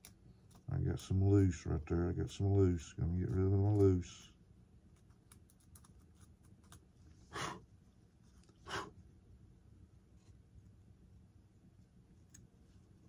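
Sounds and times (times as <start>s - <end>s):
short puffs of breath: 8.6s - 9.0s.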